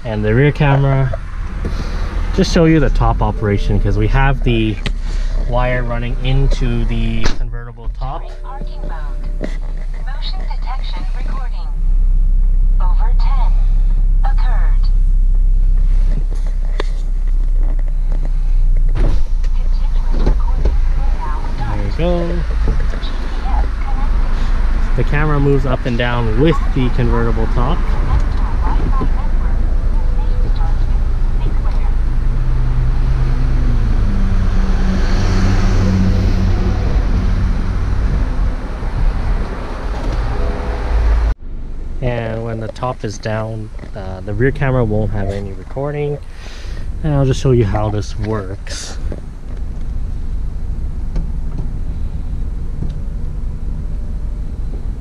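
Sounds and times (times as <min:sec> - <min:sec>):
car cabin rumble: 0:00.0 - 0:55.0.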